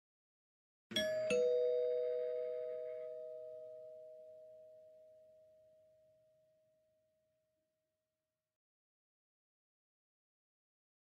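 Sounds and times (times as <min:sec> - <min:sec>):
two-note chime: 0:00.9 - 0:06.6.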